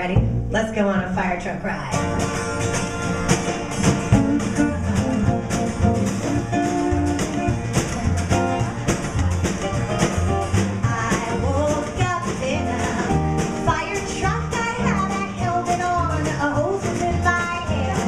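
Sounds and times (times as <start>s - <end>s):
strummed acoustic guitars: 1.8s - 18.0s
drum kit beat: 1.9s - 18.0s
woman singing: 10.8s - 18.0s.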